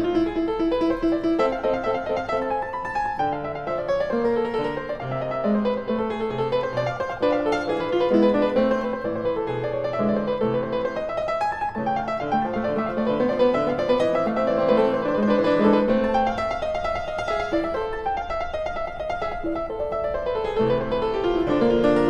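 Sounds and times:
piano music: 0:00.0 - 0:22.0.

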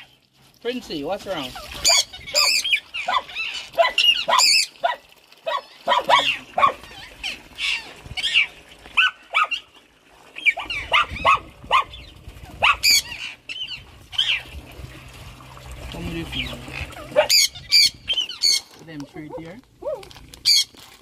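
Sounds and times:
parrots chirping and whistling: 0:01.6 - 0:04.7, 0:06.9 - 0:08.5, 0:10.4 - 0:14.4, 0:17.2 - 0:18.7, 0:20.4 - 0:20.7
parrot squawks: 0:01.7 - 0:04.7, 0:10.5 - 0:14.4, 0:17.2 - 0:18.6.

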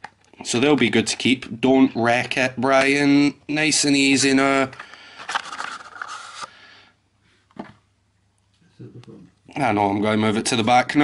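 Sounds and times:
cardboard rustling scrape: 0:05.2 - 0:06.5.

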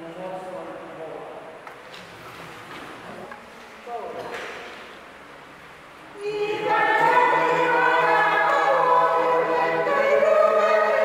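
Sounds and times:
group of voices singing: 0:06.2 - 0:11.0.

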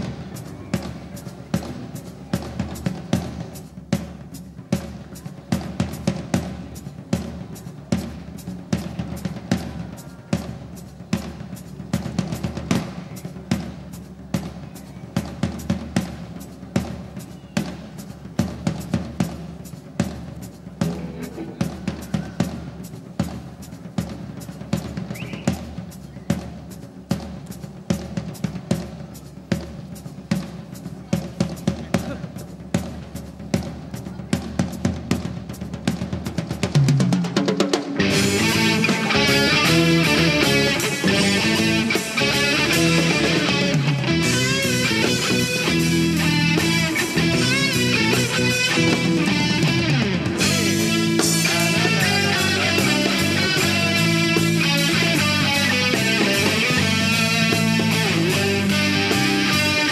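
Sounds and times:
rock drum kit playing: 0:00.0 - 0:59.9.

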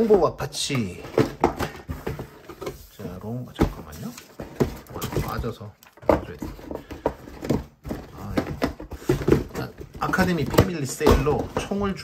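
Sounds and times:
cardboard boxes scraping and knocking: 0:00.0 - 0:12.0.

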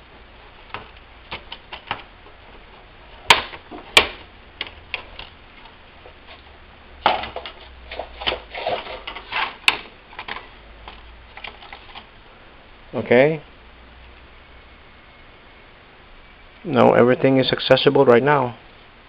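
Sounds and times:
plastic scraping: 0:07.0 - 0:12.1.

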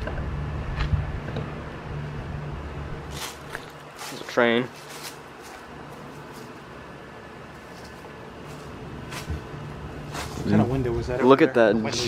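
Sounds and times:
air conditioner unit humming: 0:00.0 - 0:12.0.

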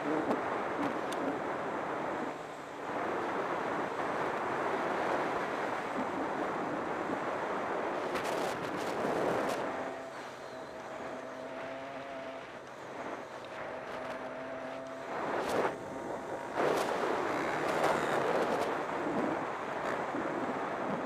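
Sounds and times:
wind rushing over camera: 0:00.0 - 0:21.0.

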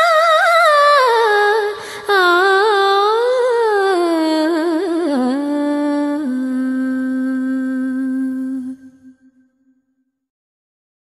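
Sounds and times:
person singing a long steady note: 0:00.0 - 0:09.1.

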